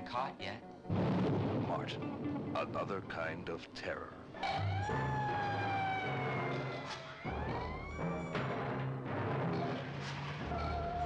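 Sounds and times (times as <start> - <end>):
wailing siren: 4.4 - 8.9, 10.4 - 11.0.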